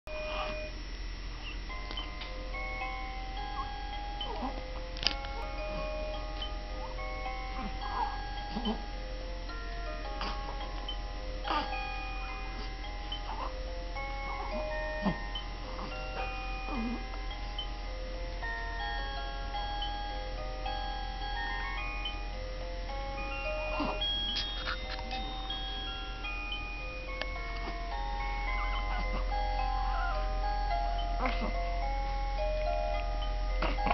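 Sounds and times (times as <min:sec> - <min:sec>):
toy lullaby chime tune: 0:00.1 - 0:00.8, 0:01.4 - 0:33.9.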